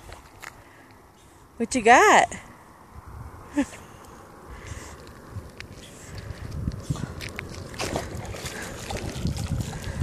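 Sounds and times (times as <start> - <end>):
wind on microphone: 2.9 - 3.7, 4.4 - 10.0
dog splashing through water: 7.0 - 10.0.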